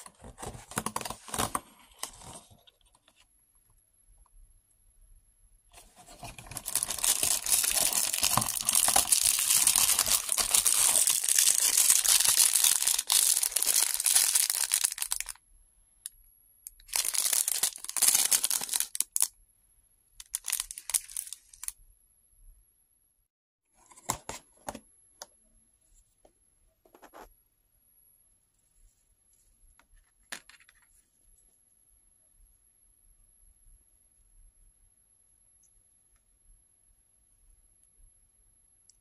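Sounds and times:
plastic bag crinkling and tearing: 5.8 - 15.4, 16.8 - 19.3, 20.2 - 21.7.

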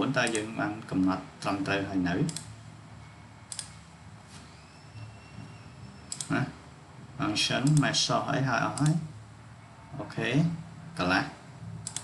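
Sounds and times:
computer mouse clicks: 2.2 - 2.5, 3.5 - 3.8, 6.1 - 6.3, 7.6 - 7.9, 8.8 - 9.0
faint high-pitched tone: 4.4 - 6.4.

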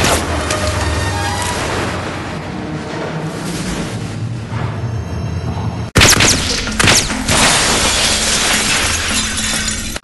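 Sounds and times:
glass shattering: 6.0 - 10.0.

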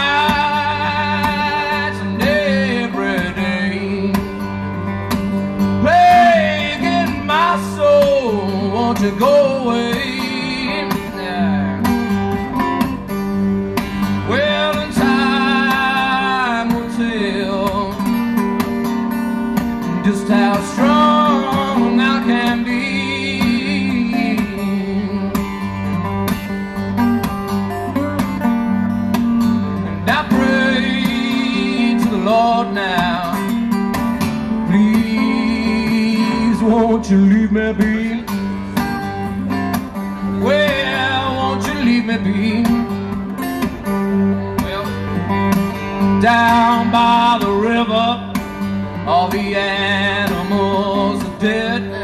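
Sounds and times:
man singing: 0.0 - 4.5, 5.8 - 12.0, 14.2 - 18.3, 19.9 - 25.6, 30.0 - 33.6, 34.4 - 38.5, 40.3 - 43.0, 46.1 - 52.0
acoustic guitar playing: 0.0 - 52.0.

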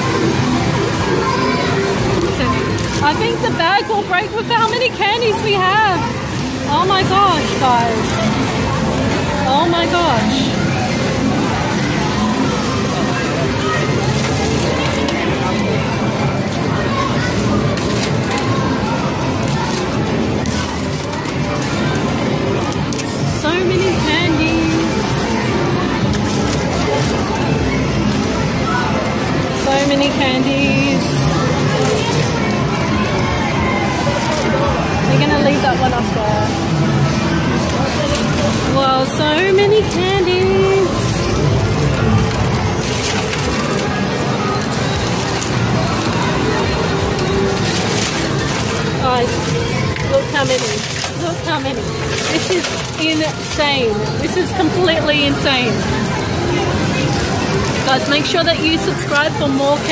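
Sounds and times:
arcade machine music: 6.0 - 59.0
plastic candy bag rustling: 13.9 - 28.4, 29.6 - 36.2, 37.5 - 59.9.

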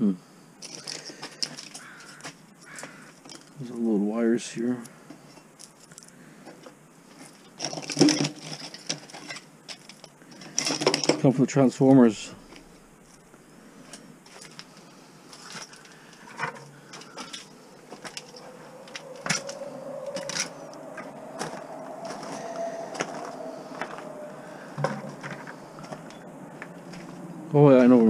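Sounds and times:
faint drawn-out hum: 0.0 - 28.0
metal tools clinking: 7.4 - 11.3, 15.4 - 20.6
footsteps on gravel: 16.9 - 24.1, 24.8 - 27.2.

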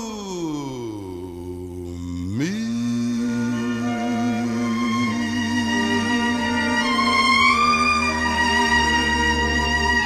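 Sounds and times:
man singing long note: 0.0 - 7.0.

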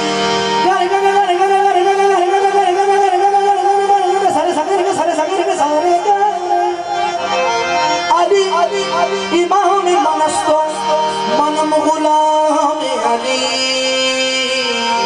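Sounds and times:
harmonium accompaniment: 0.0 - 15.0
male lead voice singing: 0.0 - 15.0.

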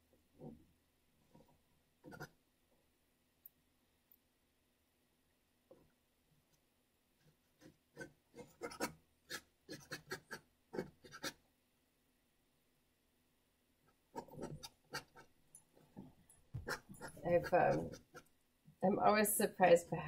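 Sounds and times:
palette knife scratching paint: 2.0 - 2.4, 7.3 - 11.4, 13.9 - 15.3, 16.6 - 18.3.

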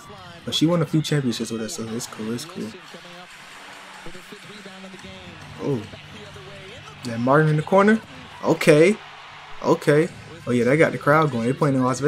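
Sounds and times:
commentator speaking: 0.0 - 3.2, 4.0 - 9.0, 9.6 - 12.0.

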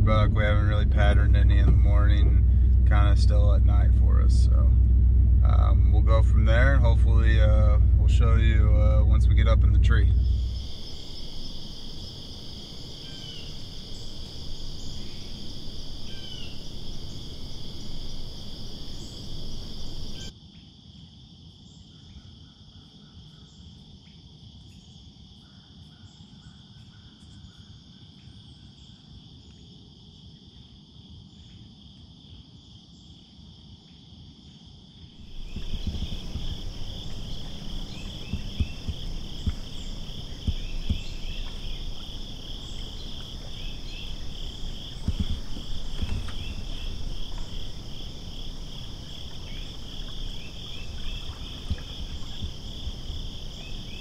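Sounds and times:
low rumbling noise: 0.0 - 20.3, 35.2 - 54.0
crickets and insects chirping: 0.0 - 54.0.

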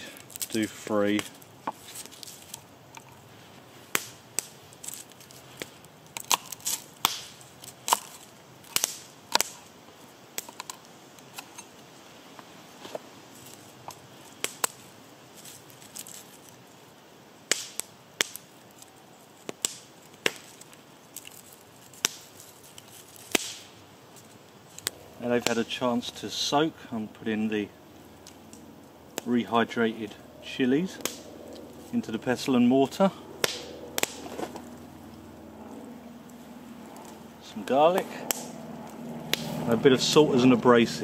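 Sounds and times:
papery skin crackle: 0.0 - 11.4, 12.8 - 16.8, 17.5 - 26.3, 30.7 - 39.7
garlic cloves cracking: 3.9 - 9.7, 17.5 - 25.8, 30.8 - 32.0, 33.2 - 37.2.

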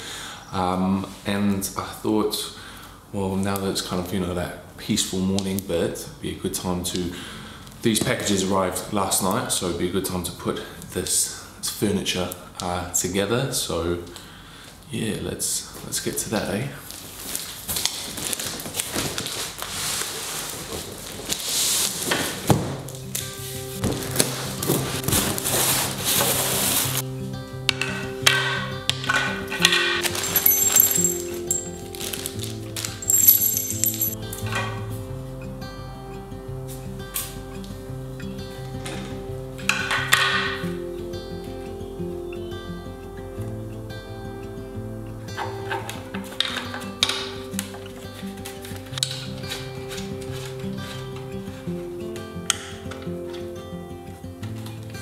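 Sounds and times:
cardboard packaging rustling: 16.9 - 22.5, 23.8 - 27.0, 30.0 - 33.6
metal parts clinking and knocking: 29.1 - 32.2, 32.8 - 34.2.

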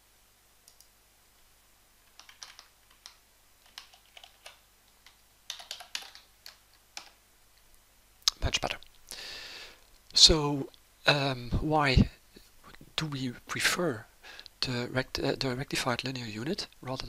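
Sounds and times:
faint keyboard keystrokes: 2.1 - 7.2.

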